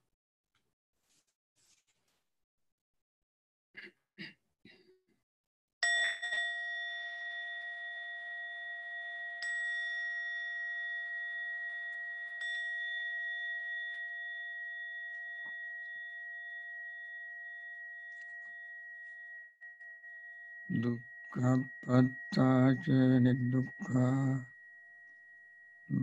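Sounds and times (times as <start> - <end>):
meditation bell ringing: 5.8 - 26.0.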